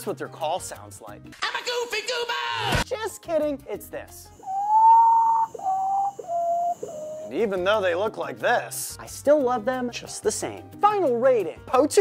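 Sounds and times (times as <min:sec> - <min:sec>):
bird whistled call: 0:04.4 - 0:07.4.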